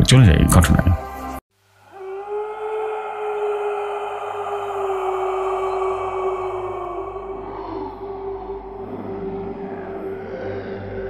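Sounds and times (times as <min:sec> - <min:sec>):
eerie drone music: 0:01.9 - 0:11.0.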